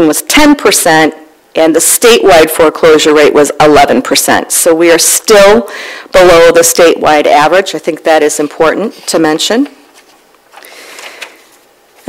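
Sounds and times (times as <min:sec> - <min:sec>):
paper pages rustling: 0:09.0 - 0:12.0.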